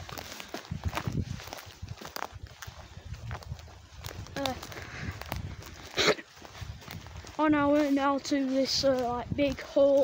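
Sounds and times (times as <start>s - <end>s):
footsteps on forest floor: 0.0s - 10.0s.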